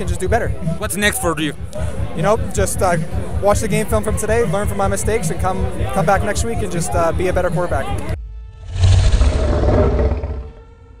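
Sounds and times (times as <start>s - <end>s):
logo sting swell with rumble: 8.5s - 10.7s.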